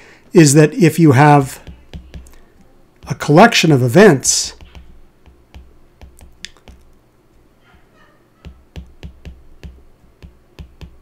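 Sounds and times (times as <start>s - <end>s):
stylus tapping on glass screen: 1.6s - 3.2s, 4.5s - 6.9s, 8.4s - 11.0s.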